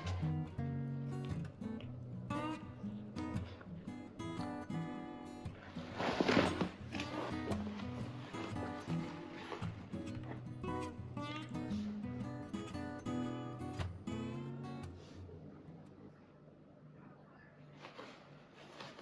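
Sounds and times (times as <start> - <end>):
acoustic guitar music: 0.0 - 15.9.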